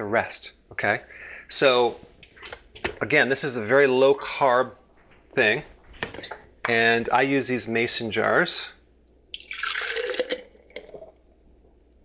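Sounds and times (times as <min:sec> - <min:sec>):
thick liquid pouring into jar: 0:09.3 - 0:11.3.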